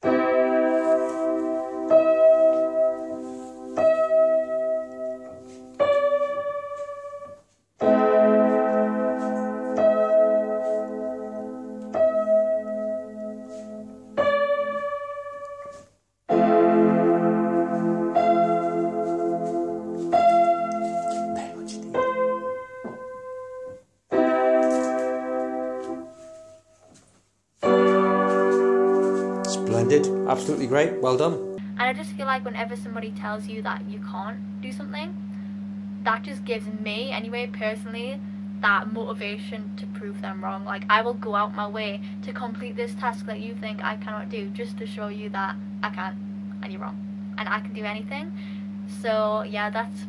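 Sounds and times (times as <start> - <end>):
piano chords ringing: 0.0 - 26.8, 27.6 - 33.1.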